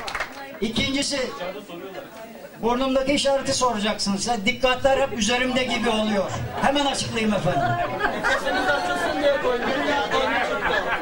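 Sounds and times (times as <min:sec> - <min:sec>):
audience chatter in a large hall: 0:00.0 - 0:11.0.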